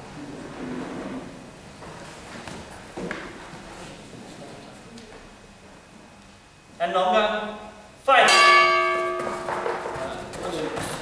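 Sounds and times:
bell ringing: 8.3 - 9.8.

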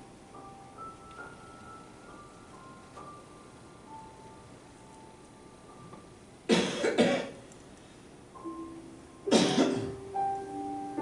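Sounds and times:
soft held musical notes: 0.0 - 6.5, 7.4 - 11.0
person coughing: 6.5 - 7.4, 9.3 - 10.0.

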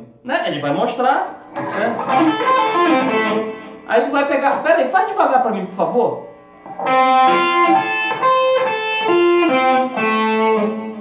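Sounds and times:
electric guitar single notes: 1.2 - 5.0, 6.1 - 11.0.

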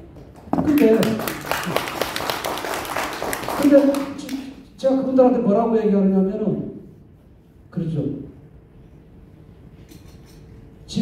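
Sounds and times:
audience applause: 0.2 - 4.4.

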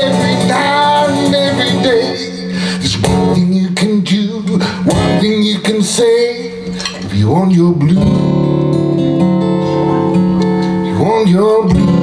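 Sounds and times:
man singing blues: 0.0 - 12.0
strummed acoustic guitar: 0.0 - 12.0.

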